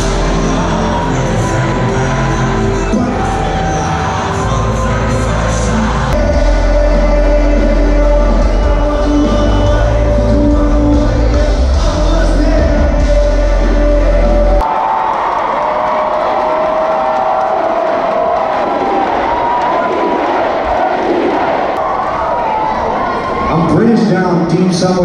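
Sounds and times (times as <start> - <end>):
live concert music with heavy bass: 0.0 - 14.8
crowd cheering and shouting: 0.0 - 25.0.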